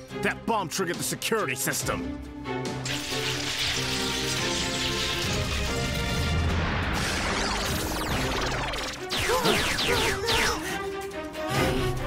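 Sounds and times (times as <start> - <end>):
background music: 0.0 - 12.0
electric crackle sound effect: 2.8 - 9.9.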